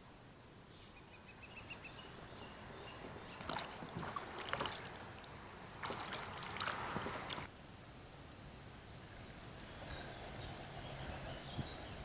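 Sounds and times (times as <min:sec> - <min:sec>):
water splashing and sloshing: 0:03.0 - 0:07.5.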